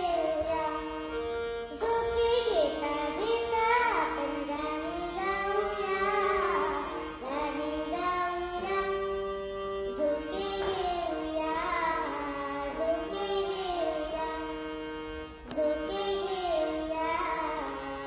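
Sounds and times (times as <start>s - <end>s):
girl singing: 0.0s - 1.1s, 1.7s - 14.6s, 15.4s - 18.0s
held accompaniment notes: 0.0s - 18.0s.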